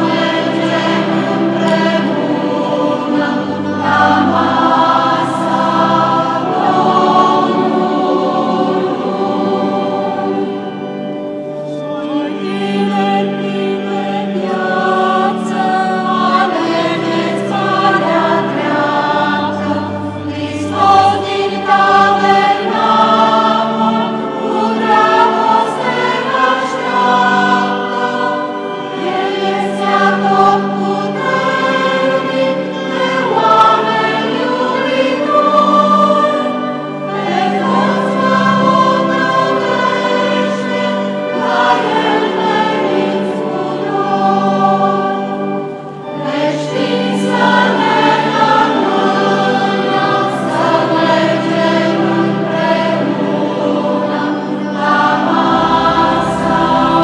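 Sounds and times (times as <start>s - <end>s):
choir singing a hymn: 0.0s - 57.0s.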